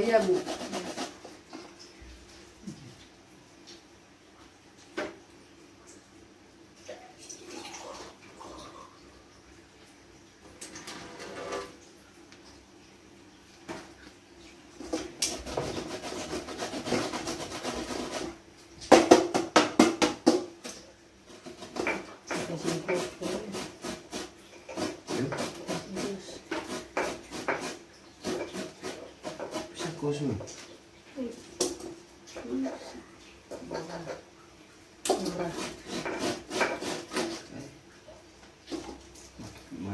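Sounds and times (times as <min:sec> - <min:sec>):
pestle scraping in mortar: 0:00.0 - 0:01.5, 0:14.9 - 0:18.4, 0:21.3 - 0:30.5, 0:35.1 - 0:37.5
pestle grinding strokes: 0:00.0 - 0:01.6, 0:15.2 - 0:18.4, 0:21.3 - 0:30.5, 0:35.1 - 0:37.6
pestle pounding strikes: 0:18.9 - 0:20.5, 0:21.6 - 0:29.7.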